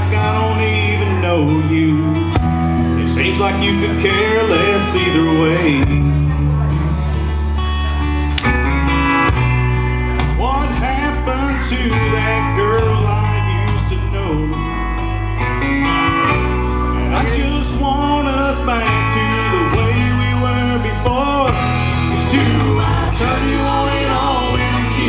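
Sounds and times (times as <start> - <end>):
man singing into a microphone: 0.0 - 7.1, 10.3 - 15.0, 17.0 - 25.0
karaoke backing track with guitar: 0.0 - 25.0.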